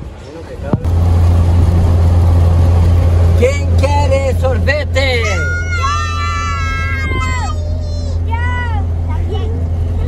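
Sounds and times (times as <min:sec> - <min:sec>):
car engine and road drone: 0:00.0 - 0:10.0.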